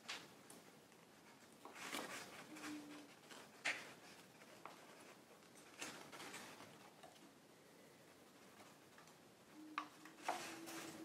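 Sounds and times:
paper rustling and crinkling: 1.1 - 7.3, 10.0 - 11.0.

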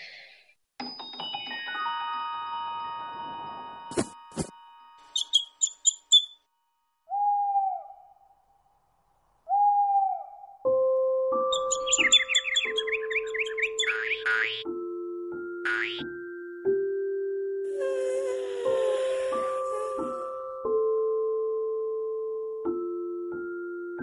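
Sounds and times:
soft lullaby music: 0.9 - 5.1, 10.6 - 24.0
fast bird twittering: 5.1 - 6.4, 11.5 - 14.6
tiny bird chirps: 5.1 - 6.4, 11.5 - 14.6.

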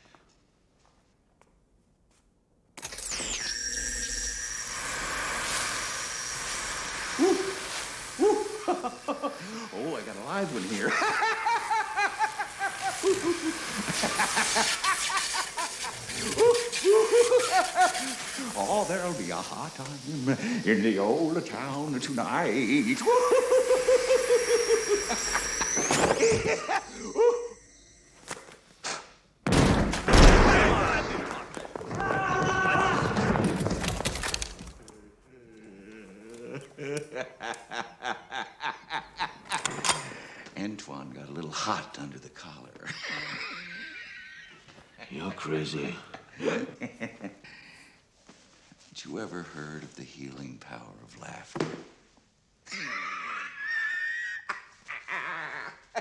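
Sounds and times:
thin high whine: 2.8 - 11.3, 16.1 - 28.6
electric buzzing crackle: 2.8 - 26.8
loud burst of noise: 22.6 - 26.6.

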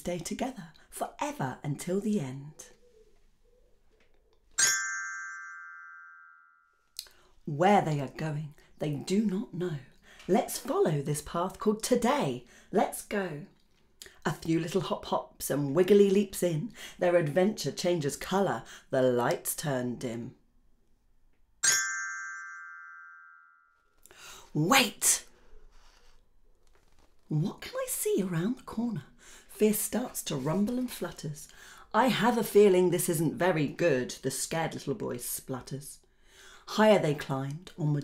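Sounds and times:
glockenspiel note ringing: 4.6 - 6.8, 21.6 - 23.8.

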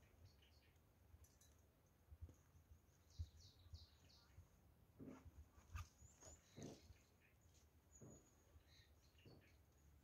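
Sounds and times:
small bird chirps: 0.0 - 1.0, 2.9 - 4.6, 5.6 - 10.0.

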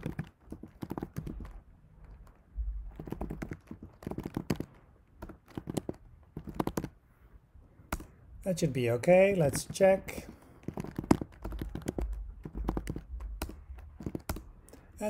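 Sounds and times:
keyboard typing: 0.0 - 7.0, 7.9 - 8.2, 9.4 - 14.9.

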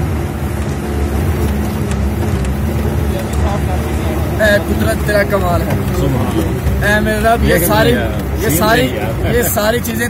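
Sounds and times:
vehicle engine droning: 0.0 - 10.0
man's voice: 3.1 - 10.0.

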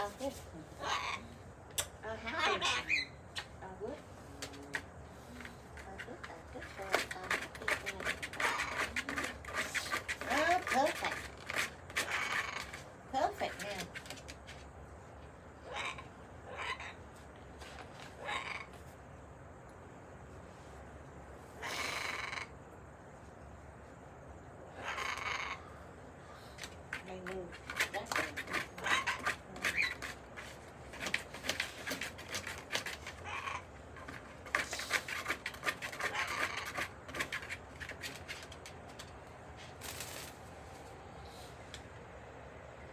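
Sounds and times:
parrots chattering: 0.7 - 1.4, 2.0 - 3.5, 6.7 - 11.3, 12.0 - 12.8, 15.6 - 17.0, 18.2 - 18.8, 21.6 - 22.5, 24.7 - 26.4, 27.5 - 30.2, 32.4 - 34.2, 34.8 - 37.5
parrot squawks: 2.2 - 3.2, 24.8 - 25.6
clicks and rustles: 26.5 - 40.4.

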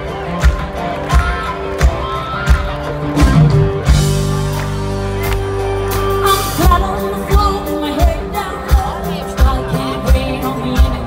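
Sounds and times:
bass guitar: 0.0 - 11.0
drum beat: 0.1 - 10.9
woman singing: 6.1 - 11.0.

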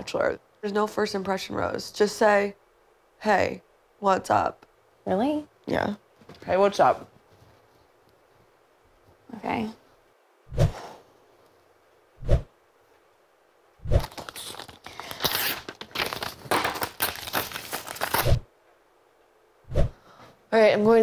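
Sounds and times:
paper tearing and crumpling: 14.0 - 18.5.

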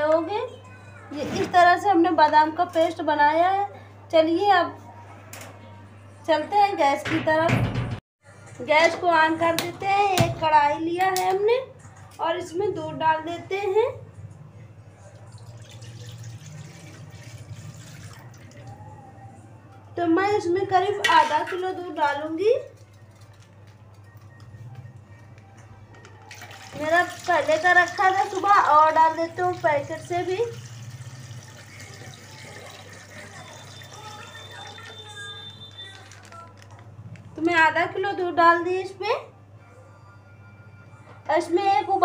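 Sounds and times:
milk pouring into metal pot: 15.2 - 18.8, 26.3 - 35.6.

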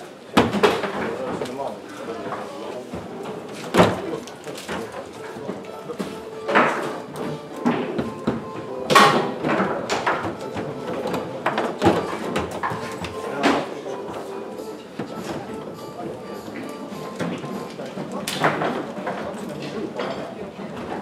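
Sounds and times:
foosball rods knocking: 6.4 - 13.7.

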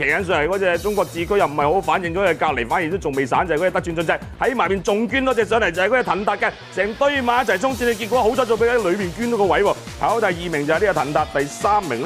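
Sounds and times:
background music: 0.0 - 12.0
race commentator speaking excitedly: 0.0 - 12.0.

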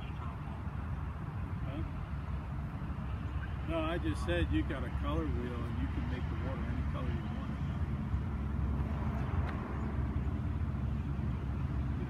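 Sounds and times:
distant freight train rumble: 0.0 - 12.0.

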